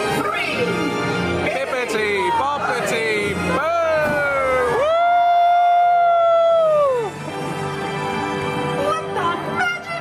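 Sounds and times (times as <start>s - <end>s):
backing music: 0.0s - 10.0s.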